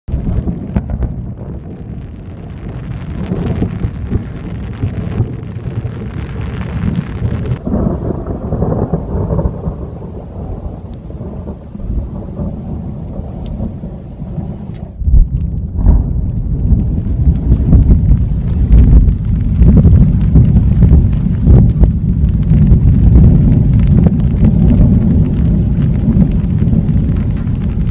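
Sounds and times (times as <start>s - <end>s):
rain hiss: 0.1s - 15.0s, 16.0s - 27.9s
rolling thunder: 0.1s - 27.9s.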